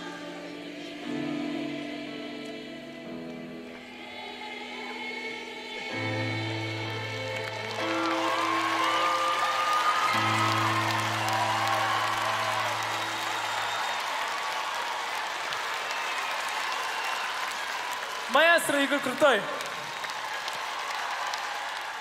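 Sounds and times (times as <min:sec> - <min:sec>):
audience applause: 0:06.3 - 0:22.0.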